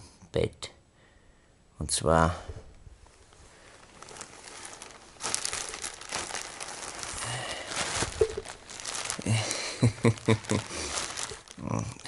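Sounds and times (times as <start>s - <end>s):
bedding rustling: 2.9s - 12.0s
plastic wrapping crinkling: 3.0s - 12.0s.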